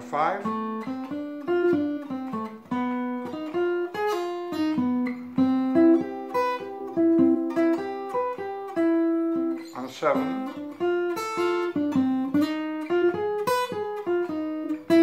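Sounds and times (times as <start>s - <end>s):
acoustic guitar arpeggio: 0.0s - 15.0s.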